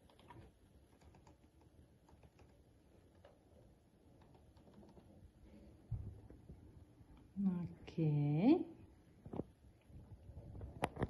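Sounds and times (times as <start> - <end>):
laptop keyboard typing: 0.0 - 3.4, 4.0 - 5.2.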